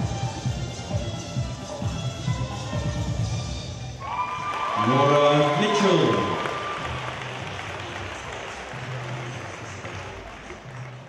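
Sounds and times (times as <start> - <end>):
audience applause: 4.0 - 11.0.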